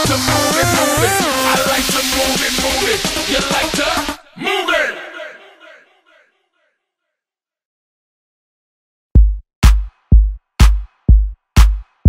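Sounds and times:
music: 0:00.0 - 0:04.4, 0:09.2 - 0:12.0
echoing shouted cry: 0:03.3 - 0:06.6.

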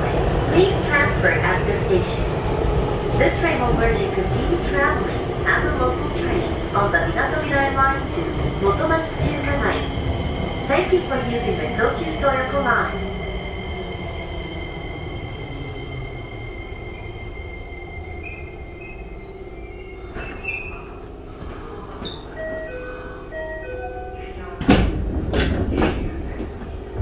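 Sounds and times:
train doors opening: 0:18.2 - 0:27.0.

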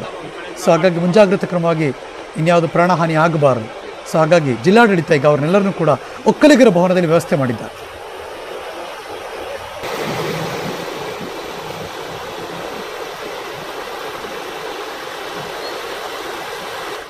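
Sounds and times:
rushing floodwater: 0:00.0 - 0:17.0.

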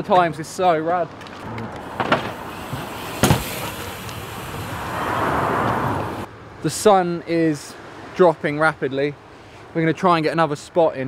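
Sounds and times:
bike tyres rolling on concrete: 0:01.2 - 0:06.3
bike landing heavy impact: 0:01.9 - 0:04.7.

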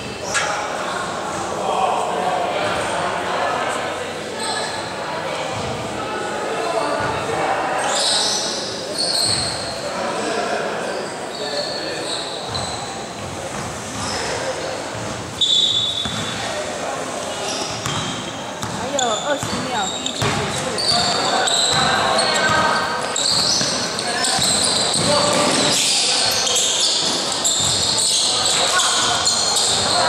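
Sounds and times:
voices echoing in hall: 0:00.0 - 0:30.0
basketball bouncing on gym floor: 0:16.0 - 0:16.4, 0:17.6 - 0:25.6.

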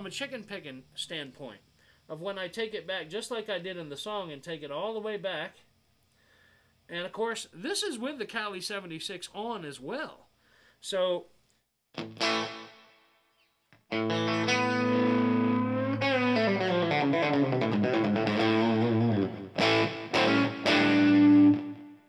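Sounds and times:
overdriven electric guitar: 0:12.0 - 0:13.2, 0:13.8 - 0:22.0.

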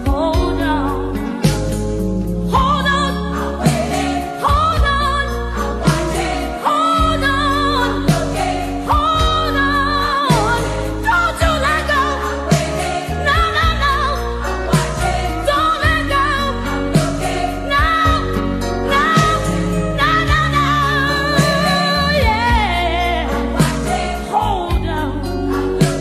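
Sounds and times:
gospel singing with vibrato: 0:00.0 - 0:26.0
sustained bass notes: 0:00.0 - 0:26.0.

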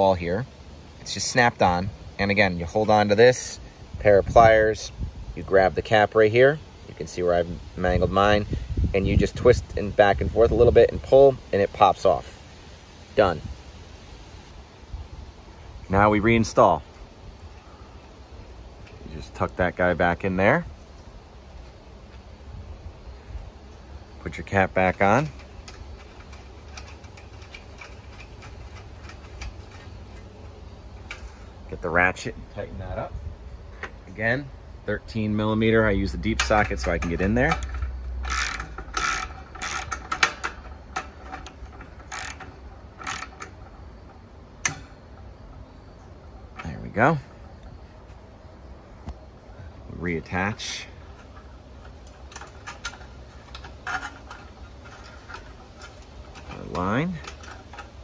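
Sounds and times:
metal parts clicking: 0:24.9 - 0:30.4, 0:36.2 - 0:45.3, 0:50.6 - 0:58.0.

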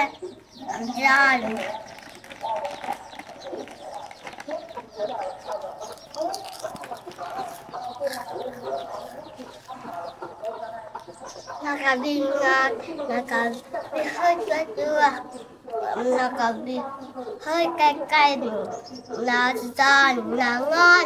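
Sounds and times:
chickens clucking: 0:00.0 - 0:21.0
crunchy snack being chewed: 0:01.4 - 0:10.0.

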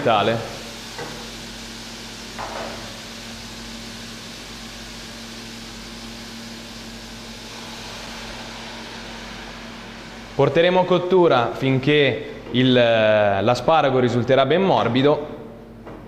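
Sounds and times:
fan-like hum and hiss: 0:00.0 - 0:16.0.

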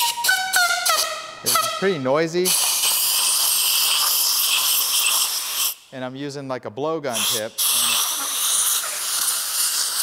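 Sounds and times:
compressed air hissing: 0:02.3 - 0:05.9, 0:07.1 - 0:10.0.

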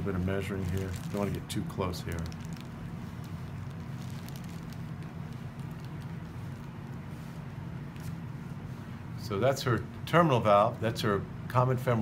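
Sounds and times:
low equipment hum: 0:00.0 - 0:12.0.

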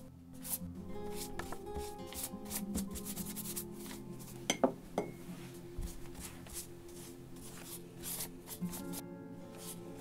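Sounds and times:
soft sustained music tones: 0:00.0 - 0:10.0.

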